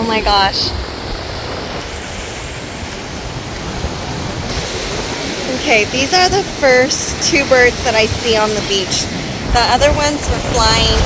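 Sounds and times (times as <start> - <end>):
ocean surf washing: 0.0 - 11.0
wind on microphone: 0.0 - 11.0.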